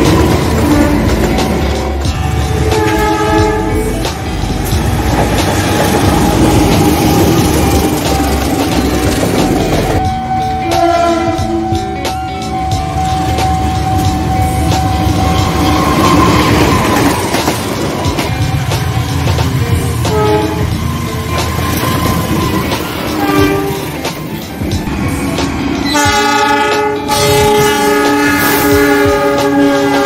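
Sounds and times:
locomotive horn: 0.0s - 4.4s, 9.9s - 17.0s, 20.0s - 20.8s, 22.2s - 24.0s, 25.8s - 30.0s
train rumble: 0.0s - 30.0s.

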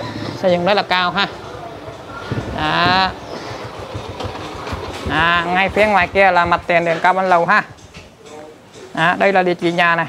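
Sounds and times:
low uneven rumbling: 1.7s - 8.2s
rapid faint knocks: 3.6s - 8.3s.

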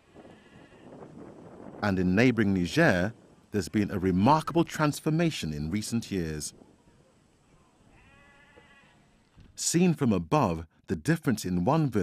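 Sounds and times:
low outdoor background: 0.0s - 12.0s
livestock bleating: 0.3s - 1.0s, 7.8s - 9.3s.

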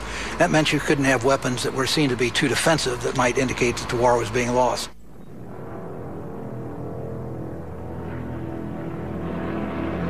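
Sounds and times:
propeller aircraft engines droning: 0.0s - 10.0s
background music: 5.5s - 10.0s.

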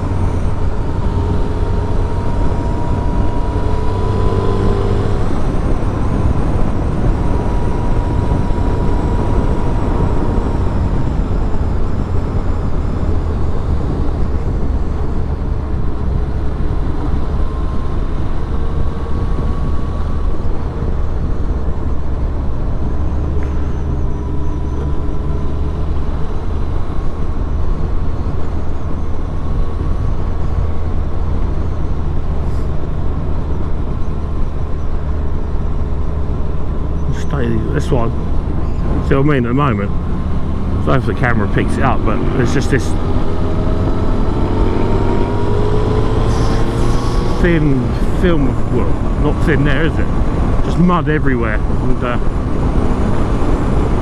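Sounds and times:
motorcycle engine cruising: 0.0s - 54.0s
road and wind noise: 0.0s - 54.0s.

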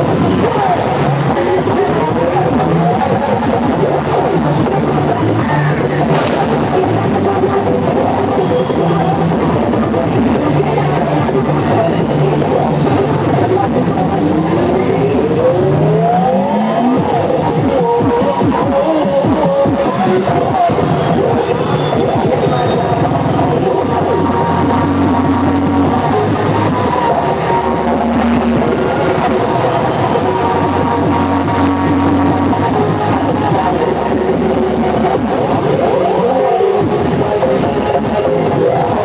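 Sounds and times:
routine music over pa: 0.8s - 35.4s.

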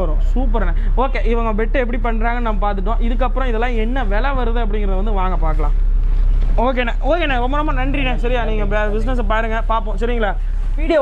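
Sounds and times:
man speaking: 0.0s - 5.9s, 6.6s - 11.0s
steady low hum: 0.0s - 11.0s.

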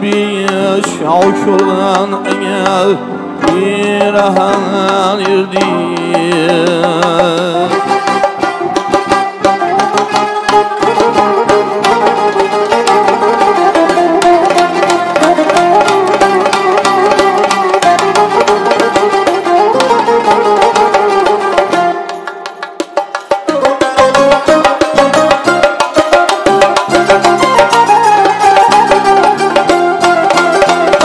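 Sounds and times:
electronic keyboard accompaniment: 0.0s - 31.0s
plucked long-necked lute melody: 0.0s - 31.0s.

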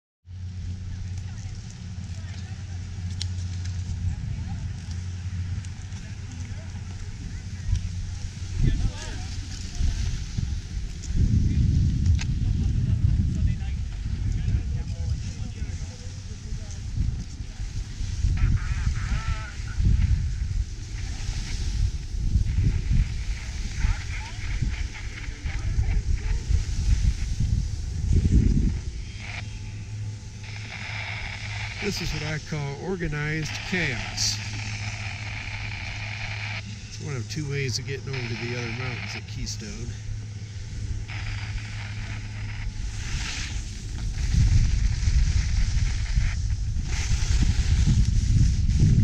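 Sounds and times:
steady low rumble: 0.3s - 49.0s
faint indistinct voices: 0.6s - 11.6s
skis scraping over snow: 0.6s - 49.0s
wind buffeting microphone: 2.7s - 38.2s, 39.6s - 49.0s.

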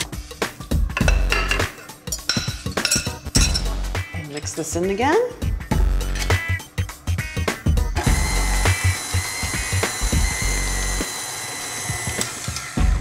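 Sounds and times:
stand mixer motor running: 8.0s - 13.0s.

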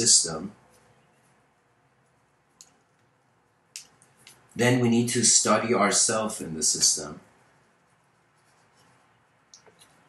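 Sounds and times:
person speaking: 0.0s - 1.3s, 3.7s - 10.0s
pen scratching on paper: 6.8s - 10.0s.

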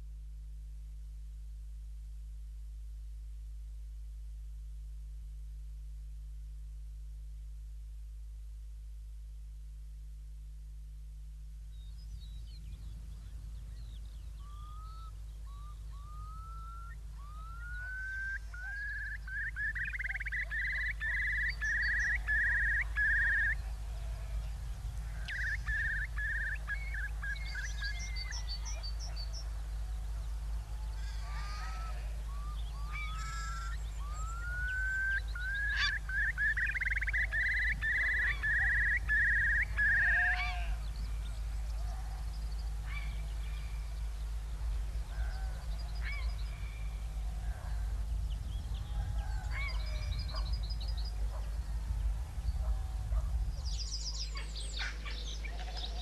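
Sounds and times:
low hum: 0.0s - 56.0s
bird calling with whistles: 14.4s - 23.6s, 25.2s - 29.4s, 31.0s - 40.7s.

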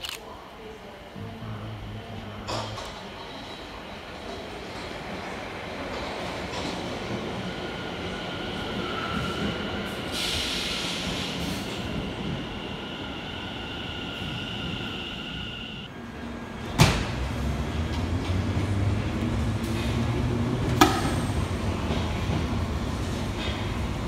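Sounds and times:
electric train running past: 4.2s - 24.0s.

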